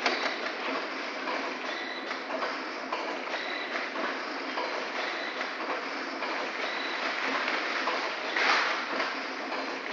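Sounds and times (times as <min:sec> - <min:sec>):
packing machine running: 0:00.0 - 0:09.9.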